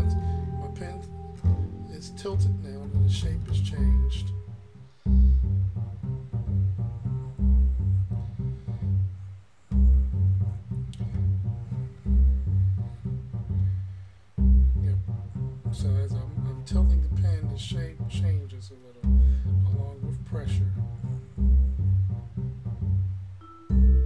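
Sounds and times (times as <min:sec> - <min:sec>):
bass and guitar music: 0:00.0 - 0:24.0.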